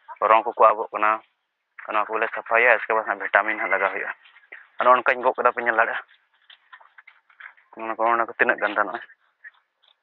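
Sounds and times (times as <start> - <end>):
man talking: 0.1 - 6.2, 7.7 - 9.2.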